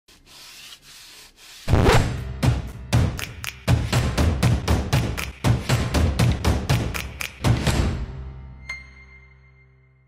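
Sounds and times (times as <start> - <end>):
sandpaper rubbing: 0.1 - 2.1
music: 1.7 - 10.0.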